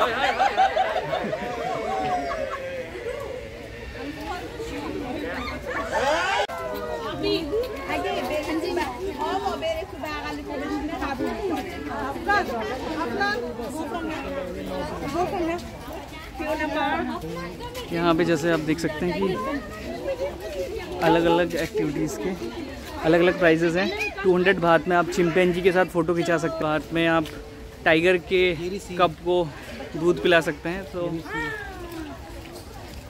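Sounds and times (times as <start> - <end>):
crowd talking: 0.0 - 33.0
voices chattering: 0.0 - 33.0.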